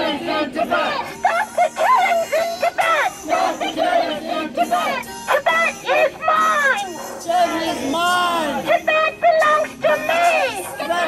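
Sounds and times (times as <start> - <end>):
crowd chanting: 0.0 - 11.0
woman shouting through a megaphone: 0.0 - 11.0.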